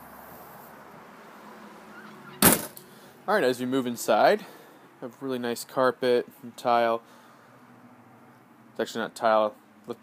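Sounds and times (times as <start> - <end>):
sharp thump: 2.4 - 2.8.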